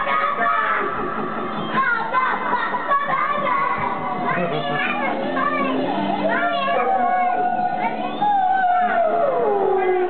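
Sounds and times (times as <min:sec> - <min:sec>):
child singing into microphone: 0:00.0 - 0:10.0
music: 0:00.0 - 0:10.0.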